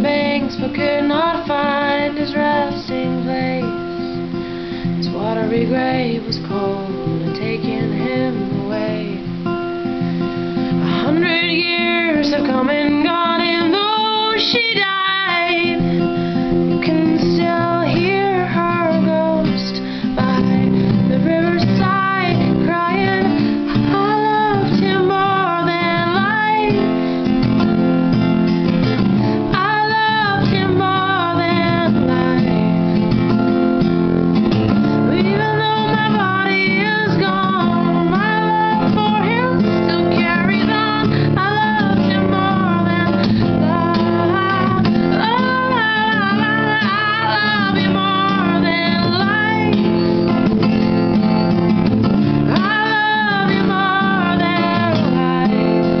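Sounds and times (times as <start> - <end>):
woman singing: 0.0 - 27.8, 29.0 - 33.9, 34.6 - 51.5, 52.3 - 56.0
acoustic guitar strumming: 0.0 - 56.0.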